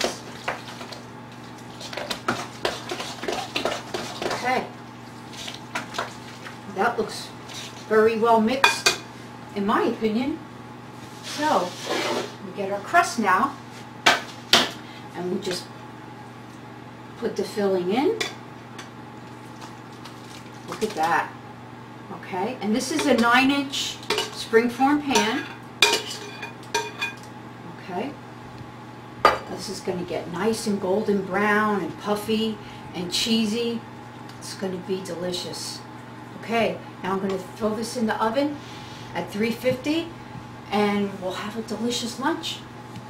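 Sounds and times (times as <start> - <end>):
spoon squelching thick filling: 0.0 - 6.7, 7.3 - 7.9
low steady hum: 0.0 - 43.0.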